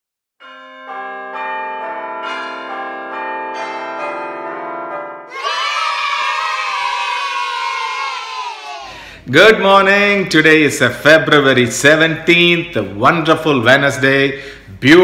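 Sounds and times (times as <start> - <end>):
bell-like notes chord: 0.4 - 5.3.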